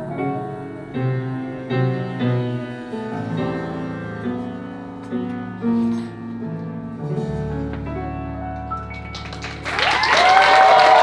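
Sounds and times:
piano playing sustained chords: 0.0 - 11.0.

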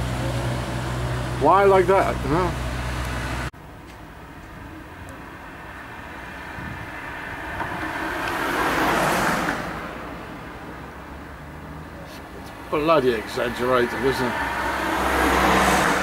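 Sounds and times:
outdoor traffic noise: 0.0 - 16.0
vehicle passing: 5.4 - 16.0.

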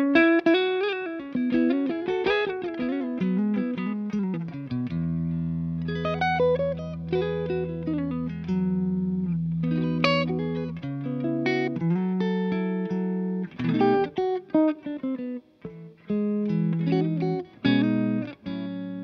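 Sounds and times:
electric guitar through amp: 0.0 - 19.0.

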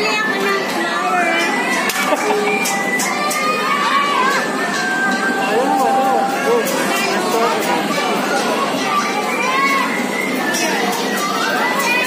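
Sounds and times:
children shouting and calling: 0.0 - 12.0.

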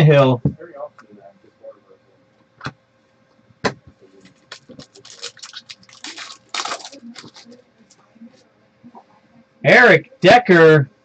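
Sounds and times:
foil wrapper crinkling: 4.4 - 7.6.

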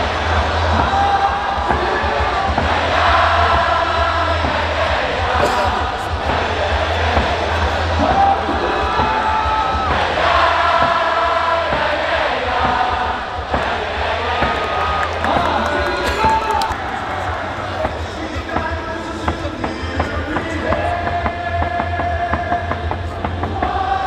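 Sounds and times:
cheer song over stadium loudspeakers: 0.0 - 24.0
fans singing and chanting: 0.0 - 24.0.

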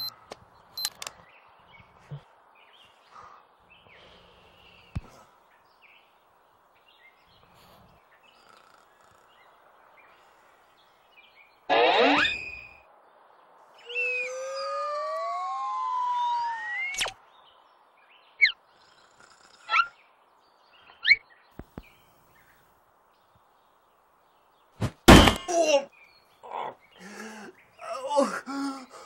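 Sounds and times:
sharp clicks: 0.0 - 1.2.

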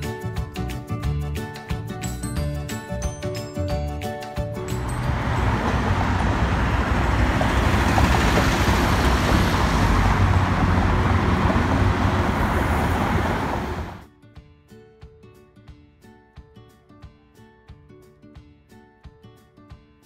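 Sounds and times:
traffic rumble: 4.8 - 14.0.

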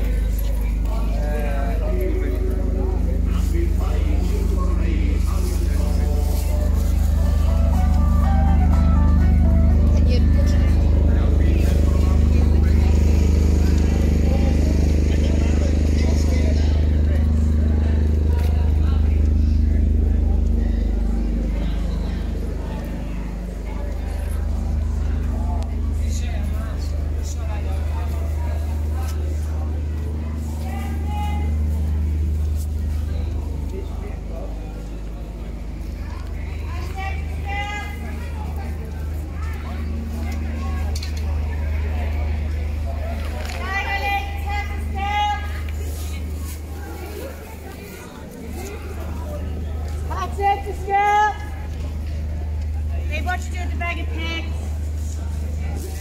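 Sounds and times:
crowd chatter: 0.0 - 56.0
faint voices of passers-by: 0.0 - 56.0
loud steady low hum: 0.0 - 56.0
low street rumble: 0.0 - 56.0
tune of stepped notes: 6.0 - 15.9
music: 6.6 - 11.0.

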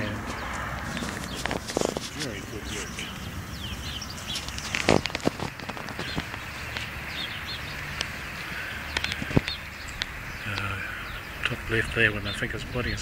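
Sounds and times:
small birds chirping: 0.0 - 13.0
sharp clicks: 4.3 - 6.9, 8.9 - 10.7.

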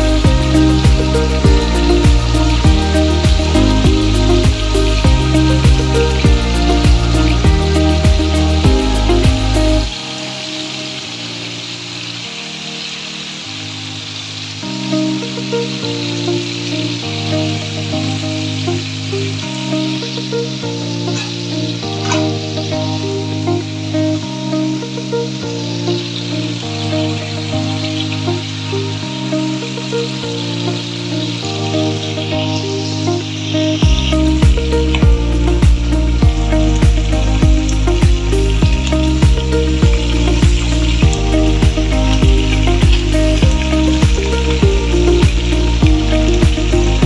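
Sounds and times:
background music: 0.0 - 47.0
meat sizzling in a pan: 0.0 - 47.0.

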